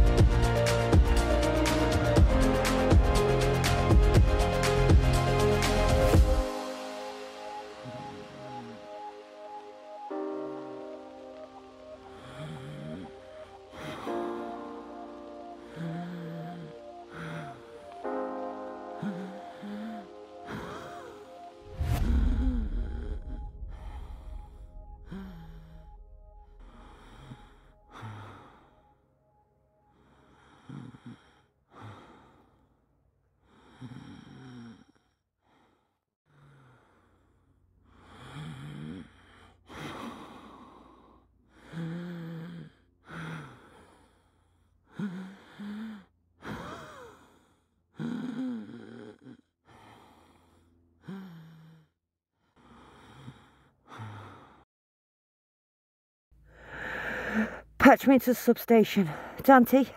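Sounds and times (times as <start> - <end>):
person breathing heavily: 0.0 - 29.0, 29.9 - 32.8, 33.4 - 51.9, 52.5 - 54.6, 56.4 - 57.9, 59.0 - 59.9.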